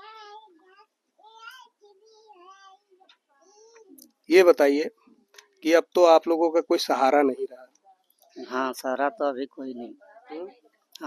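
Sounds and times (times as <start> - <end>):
faint high-pitched voice: 0.0 - 4.0.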